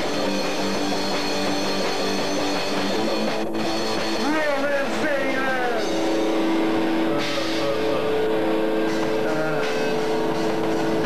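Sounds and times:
rock band playing live: 0.0s - 11.0s.

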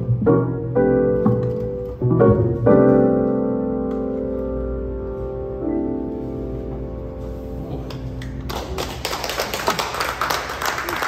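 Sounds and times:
audience applauding: 7.9s - 11.0s.

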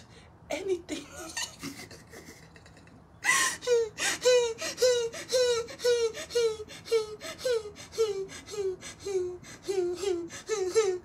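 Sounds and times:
woman sobbing and wailing: 0.6s - 11.0s.

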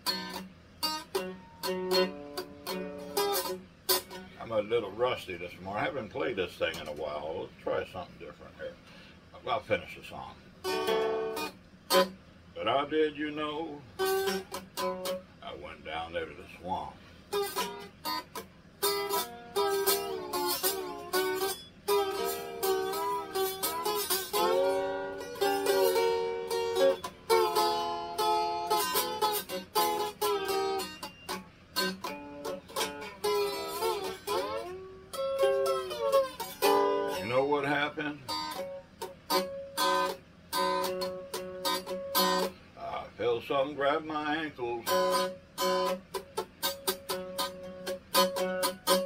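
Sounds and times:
ukulele strumming: 0.0s - 4.4s, 10.6s - 12.2s, 13.9s - 15.3s, 17.3s - 42.6s, 44.8s - 49.0s.

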